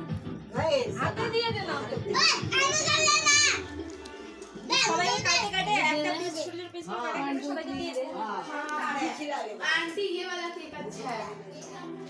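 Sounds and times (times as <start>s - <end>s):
background music: 0.0s - 12.0s
children's voices: 2.1s - 3.8s, 4.6s - 6.5s.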